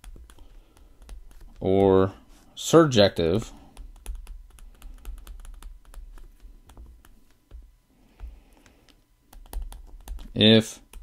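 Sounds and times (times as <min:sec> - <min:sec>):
stylus tapping on tablet screen: 0:00.0 - 0:02.0, 0:03.6 - 0:11.0.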